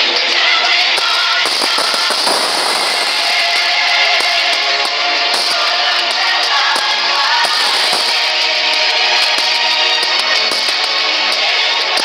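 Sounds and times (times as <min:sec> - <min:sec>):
orchestral film music: 0:00.2 - 0:12.0.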